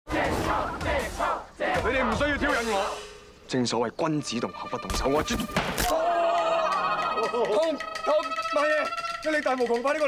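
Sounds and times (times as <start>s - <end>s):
people shouting: 0.1s - 2.6s, 5.8s - 7.8s.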